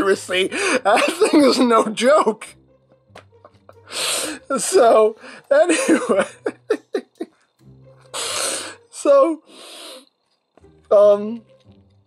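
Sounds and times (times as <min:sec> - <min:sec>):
man laughing under his breath: 0:05.5 - 0:07.4.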